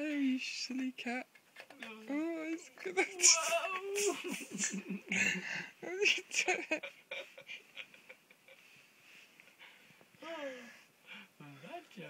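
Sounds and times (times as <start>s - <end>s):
person laughing breathily: 3.2s - 8.8s.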